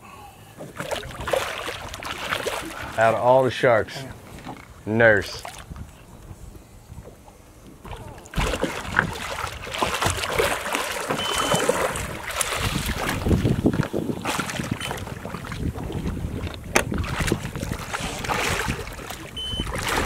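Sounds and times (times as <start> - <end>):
water splashing and churning: 0.0 - 20.0
wind buffeting microphone: 5.4 - 20.0.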